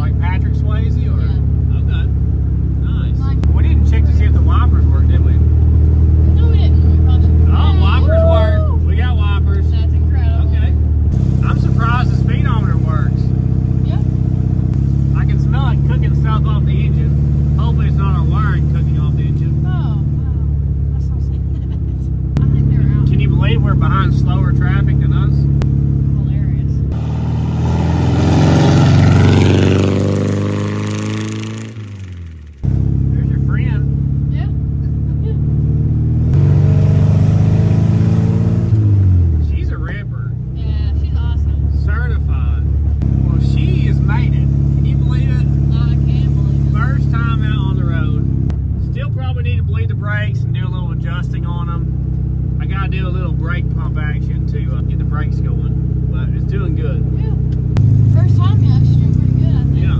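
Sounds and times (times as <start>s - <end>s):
car engine running while driving: 0.0s - 59.9s.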